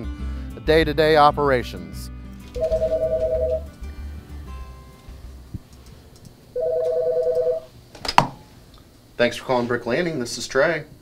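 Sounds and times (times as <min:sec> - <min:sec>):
desk phone two-tone ringing: 0:02.6 - 0:03.7, 0:06.6 - 0:07.7.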